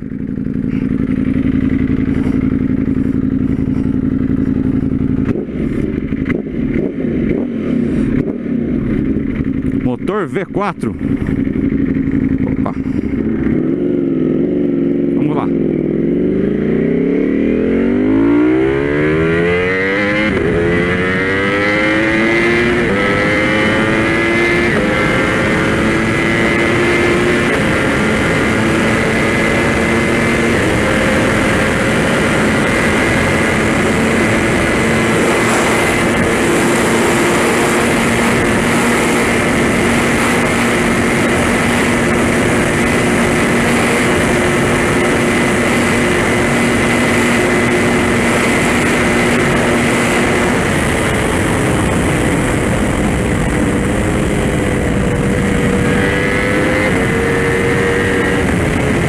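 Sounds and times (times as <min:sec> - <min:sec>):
motorcycle engine accelerating: 0:00.0 - 0:59.0
wind noise: 0:16.2 - 0:59.0.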